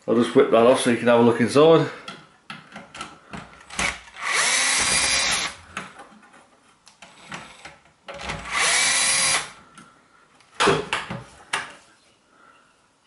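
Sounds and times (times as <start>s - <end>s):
cordless drill running: 3.7s - 5.6s, 8.2s - 9.6s.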